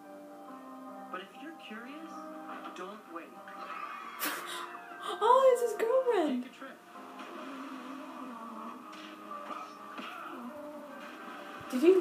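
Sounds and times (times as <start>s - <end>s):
faint music from a tv: 0.0s - 12.0s.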